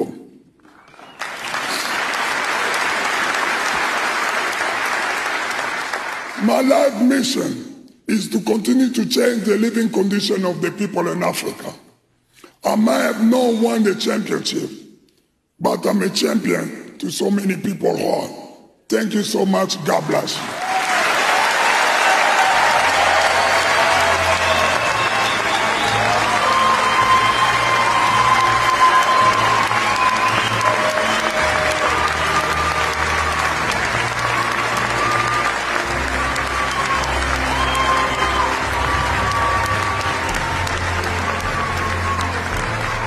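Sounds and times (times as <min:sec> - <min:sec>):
audience applauding: 0:00.0 - 0:07.2, 0:19.9 - 0:43.0
music playing: 0:22.2 - 0:43.0.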